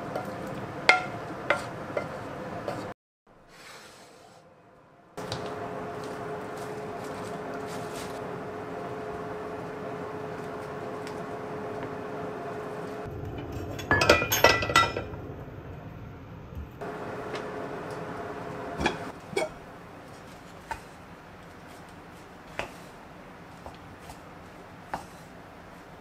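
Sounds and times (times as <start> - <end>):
kitchen hum: 0.0 - 4.5, 5.2 - 26.0
dishes clinking: 13.5 - 15.2.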